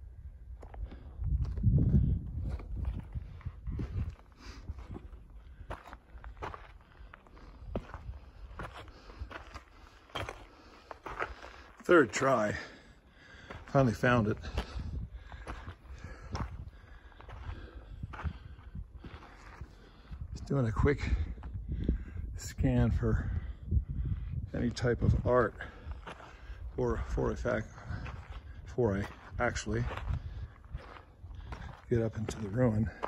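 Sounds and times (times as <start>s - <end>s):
footsteps on loose stone: 0.6s - 12.6s, 13.3s - 20.1s, 25.6s - 33.0s.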